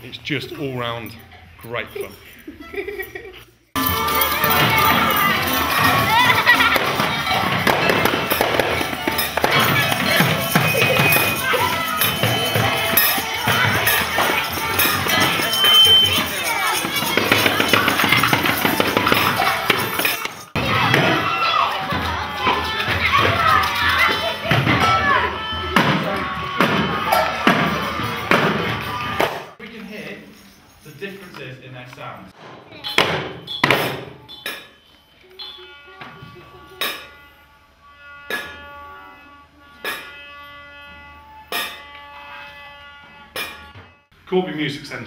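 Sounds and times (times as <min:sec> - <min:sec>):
tambourines: 0:03.8 - 0:25.6, 0:26.2 - 0:31.4
children's voices: 0:03.8 - 0:29.2
children beating frame drums: 0:03.8 - 0:29.6, 0:32.8 - 0:34.8
hand percussion playing: 0:03.8 - 0:29.6
violin: 0:35.4 - 0:44.1.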